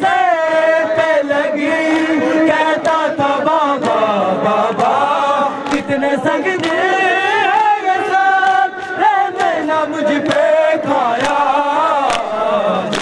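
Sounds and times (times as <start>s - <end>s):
men chanting a lament: 0.0s - 13.0s
person singing into a microphone: 0.0s - 13.0s.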